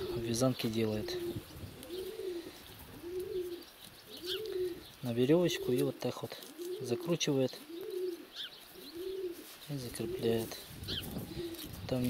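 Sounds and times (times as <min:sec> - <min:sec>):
pigeon cooing: 0:00.0 - 0:11.8.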